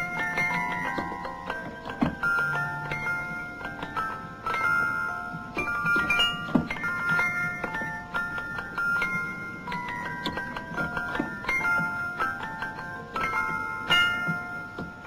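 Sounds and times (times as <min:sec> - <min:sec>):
music box melody: 0:00.0 - 0:15.0.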